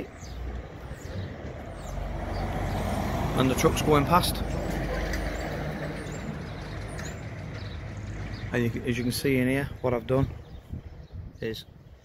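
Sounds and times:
truck driving past: 0.5s - 9.4s.

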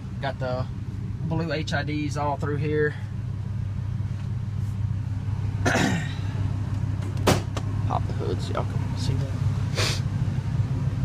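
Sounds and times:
truck engine idling drone: 0.0s - 11.0s
person coughing: 5.6s - 6.3s.

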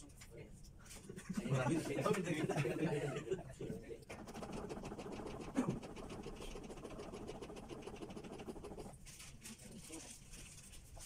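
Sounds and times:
manikin clicking under compressions: 4.1s - 9.0s.

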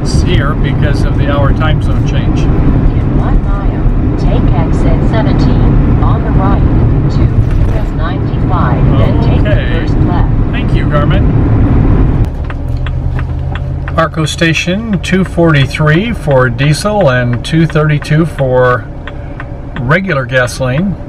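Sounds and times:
vehicle engine and tyre drone: 0.0s - 21.0s.

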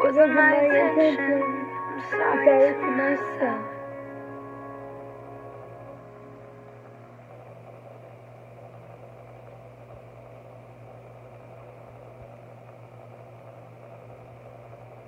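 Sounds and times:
faint background noise: 0.0s - 15.0s
low mechanical hum: 0.0s - 15.0s.

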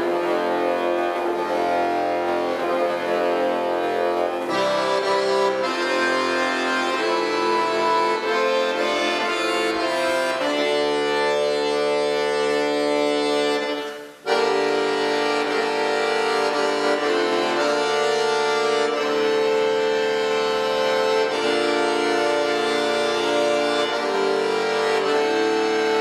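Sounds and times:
accordion playing chords: 0.0s - 26.0s.

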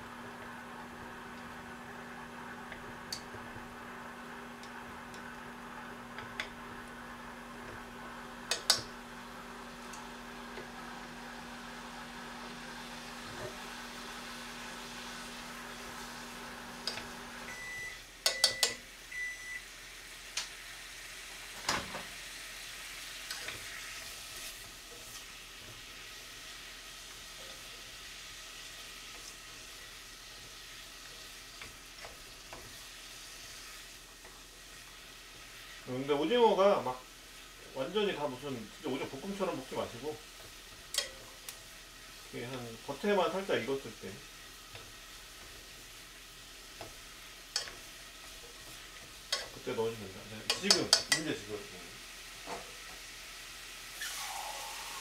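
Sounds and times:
appliance hum: 0.0s - 55.0s
food sizzling in oil: 0.0s - 55.0s
chopsticks knocking a pot: 50.5s - 51.3s.

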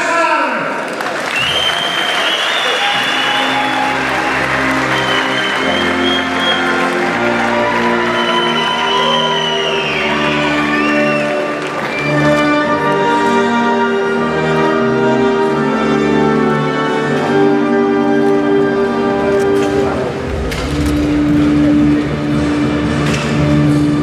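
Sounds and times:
audience applauding and cheering: 0.7s - 13.4s
music from speakers: 2.8s - 13.3s.

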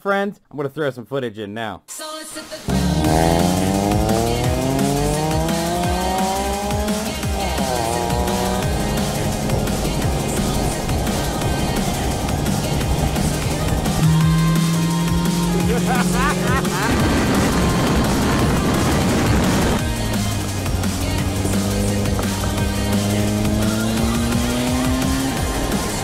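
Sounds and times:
car engine accelerating hard: 2.6s - 26.0s
road and wind noise: 2.7s - 26.0s.

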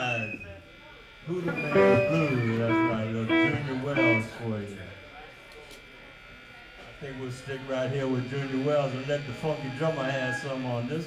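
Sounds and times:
man talking: 1.4s - 4.4s
plucked electric guitar notes: 1.5s - 4.3s.

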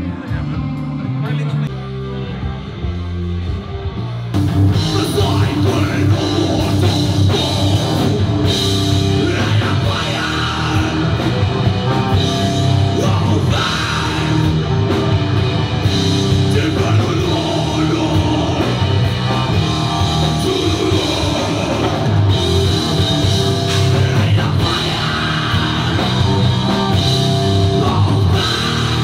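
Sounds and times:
bass guitar: 0.0s - 29.0s
distorted electric guitar: 0.0s - 29.0s
drum kit: 0.0s - 29.0s.

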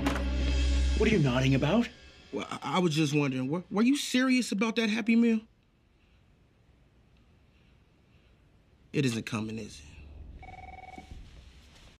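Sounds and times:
faint low rumble: 5.5s - 12.0s.

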